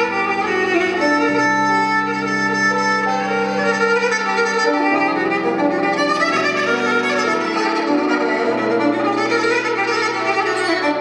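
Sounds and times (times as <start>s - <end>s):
bowed fiddle melody: 0.0s - 11.0s.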